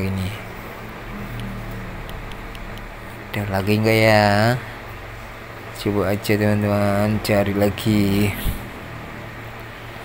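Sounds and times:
faint low hum: 0.0 - 10.0
rushing outdoor background noise: 0.0 - 10.0.

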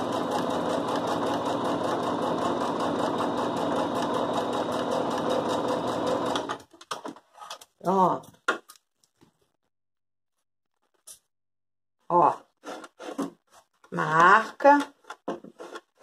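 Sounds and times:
sewing machine stitching: 0.0 - 6.7.

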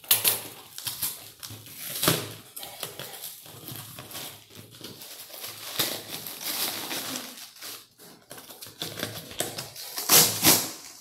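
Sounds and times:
packing tape ripping off box: 0.0 - 11.0
paper rustling: 0.0 - 11.0.

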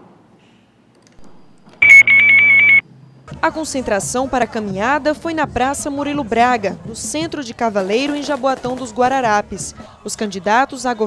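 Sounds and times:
high warbling electronic beep: 1.8 - 2.8.

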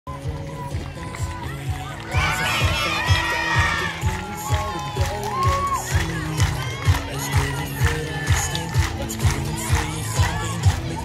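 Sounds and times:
music with bass beat: 0.1 - 11.0
children shouting and cheering: 1.0 - 11.0.

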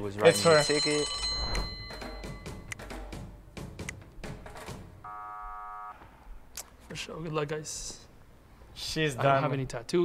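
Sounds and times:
electronic buzzer tone: 5.0 - 6.0.

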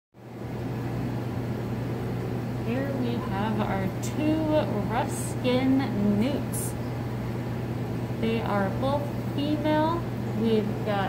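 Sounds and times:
low electrical hum: 0.2 - 11.0.

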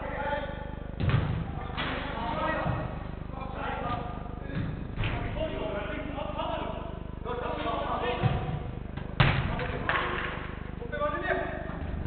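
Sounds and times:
football kicked thud: 1.0 - 1.5, 8.2 - 9.6.

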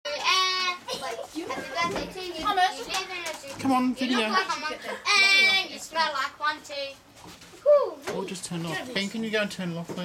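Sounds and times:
children talking: 0.1 - 9.1.

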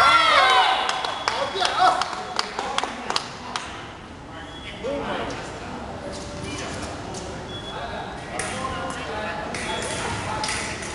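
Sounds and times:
murmur of large hall: 0.0 - 10.9
crowd handclaps: 0.8 - 3.8.

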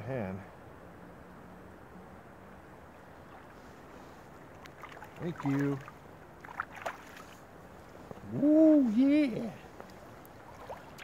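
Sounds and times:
river water running: 0.0 - 11.0
small splashes of hands in water: 4.5 - 7.4, 9.7 - 11.0.

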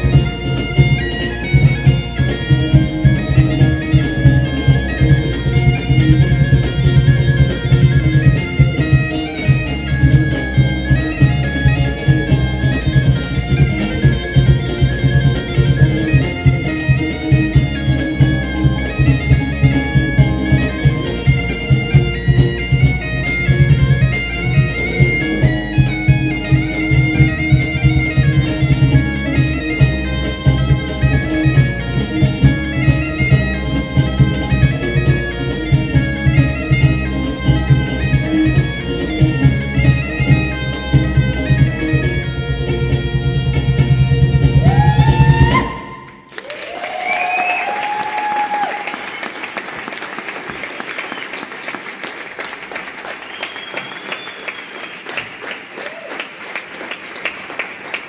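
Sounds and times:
regular drum beat: 0.0 - 45.9
bagpipe melody over drone: 0.0 - 46.3
folk band playing: 0.0 - 58.0.

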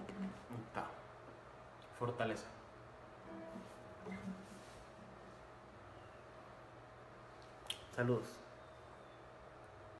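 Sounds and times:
faint steady hum: 0.0 - 9.9.

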